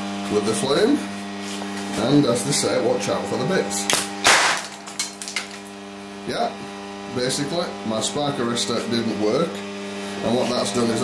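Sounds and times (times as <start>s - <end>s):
steady hum: 0.0s - 11.0s
gas igniting with a bang: 3.9s - 4.8s.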